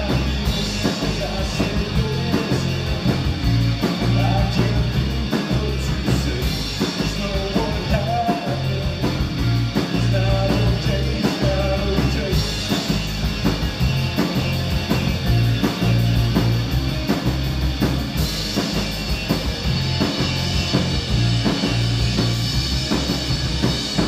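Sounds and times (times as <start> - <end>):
drum kit beat: 0.0 - 24.0
electric bass: 0.0 - 24.0
electric guitars: 0.0 - 24.0.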